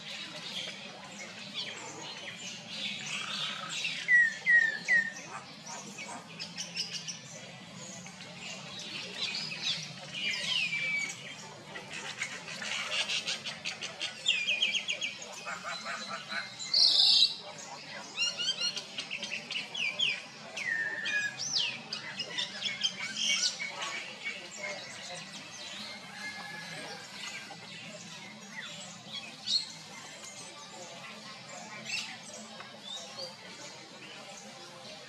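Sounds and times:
birds chirping and whistling: 0:00.0 - 0:35.0.

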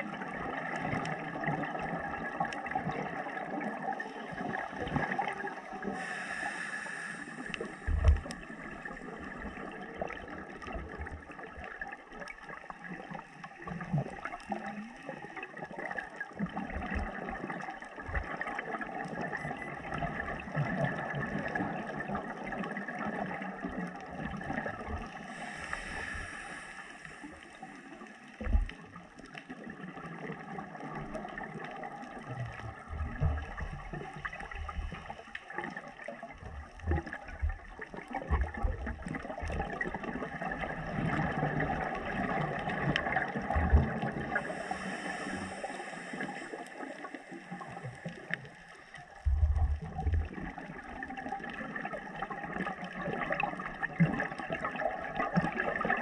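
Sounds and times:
gurgling bubbles underwater: 0:00.0 - 0:56.0
diver breathing through regulator: 0:05.8 - 0:08.7, 0:25.2 - 0:27.9, 0:44.3 - 0:48.3.

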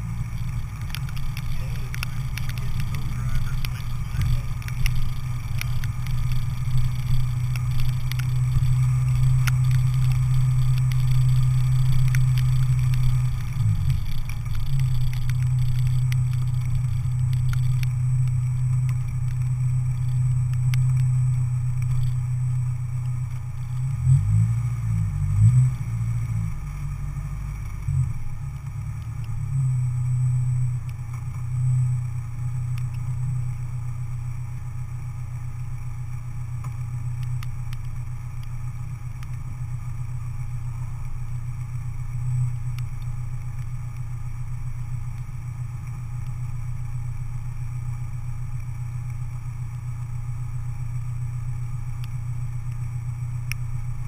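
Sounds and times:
car engine running low speed: 0:00.0 - 0:54.0.

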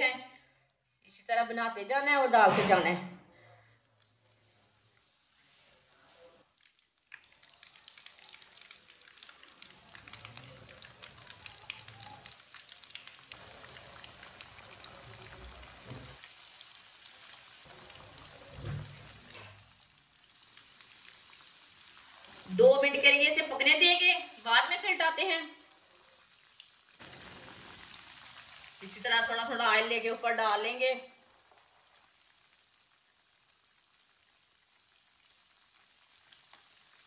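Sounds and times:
patties sizzling in hot oil: 0:03.6 - 0:37.0.

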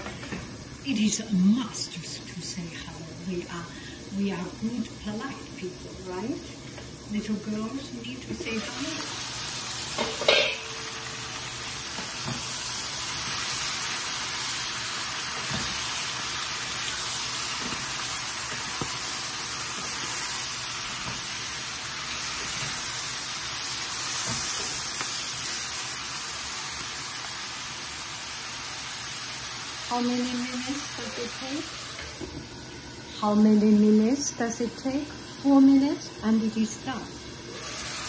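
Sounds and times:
vegetables sizzling in a frying pan: 0:00.0 - 0:38.0
spatulas knocking on pan: 0:10.0 - 0:10.9.

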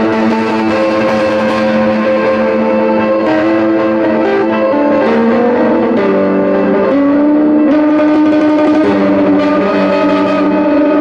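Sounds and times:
electric mandolin slow melody: 0:00.0 - 0:11.0.

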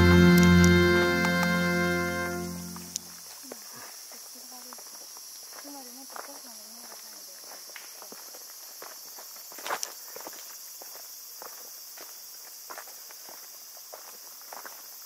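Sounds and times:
steady high hiss: 0:00.0 - 0:03.4.

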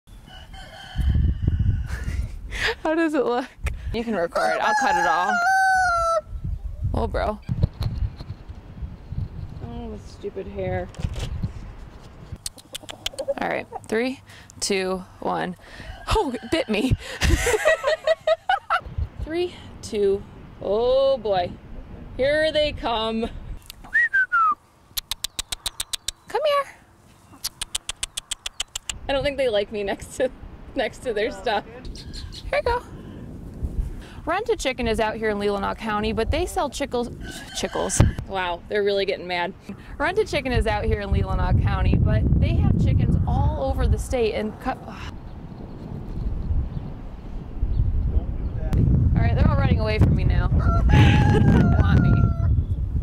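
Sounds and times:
rooster crowing: 0:00.3 - 0:02.0, 0:04.3 - 0:06.3, 0:15.7 - 0:16.9, 0:37.2 - 0:38.2, 0:50.5 - 0:52.6
person whistling: 0:23.9 - 0:24.6.

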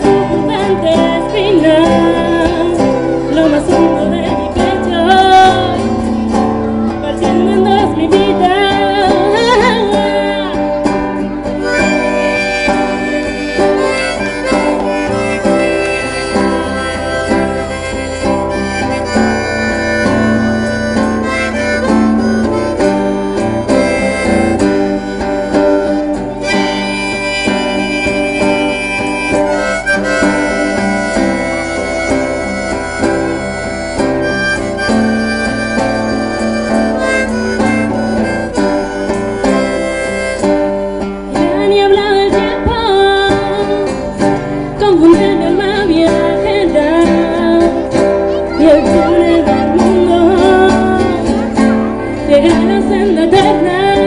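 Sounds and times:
person singing: 0:00.0 - 0:54.0
strummed guitars: 0:00.0 - 0:54.0
lead melody of held notes: 0:11.2 - 0:41.3.

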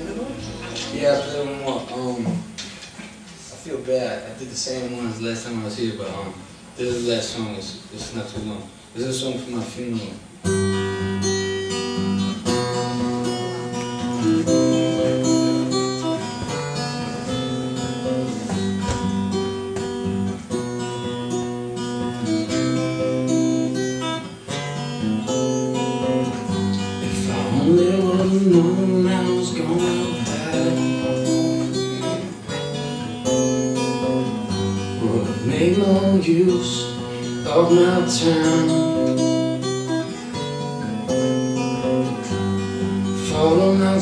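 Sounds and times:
acoustic guitar chords: 0:00.0 - 0:44.0.

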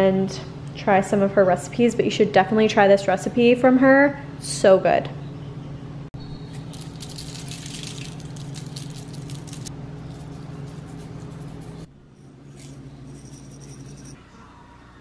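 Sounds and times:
steady low hum: 0:00.0 - 0:15.0
seasoning shaker rattling: 0:06.5 - 0:14.2.

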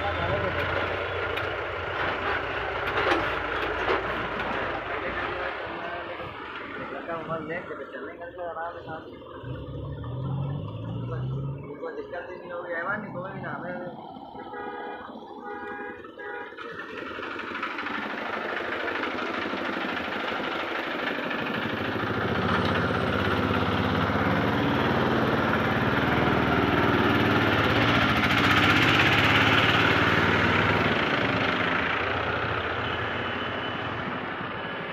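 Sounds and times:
road noise: 0:00.0 - 0:34.9
vehicle engine running: 0:00.0 - 0:34.9.

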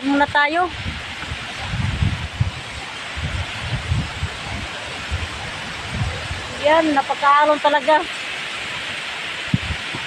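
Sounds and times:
wind buffeting microphone: 0:00.0 - 0:08.0, 0:08.7 - 0:10.0
surf breaking on shore: 0:00.0 - 0:10.0.

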